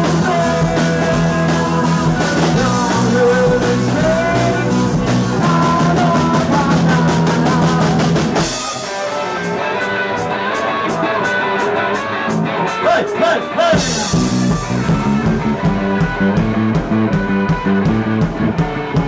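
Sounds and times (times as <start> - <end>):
person singing: 0.0 - 11.5, 12.6 - 15.5
bass guitar: 0.0 - 19.0
drum kit: 0.0 - 19.0
electric guitar: 0.0 - 19.0.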